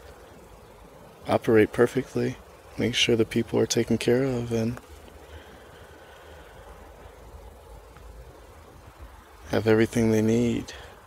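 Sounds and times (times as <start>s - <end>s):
light hiss: 0.0s - 11.0s.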